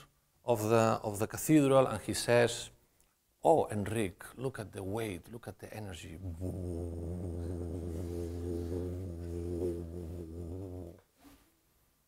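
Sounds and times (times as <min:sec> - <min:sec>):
man humming a low drone: 0:06.0 - 0:11.0.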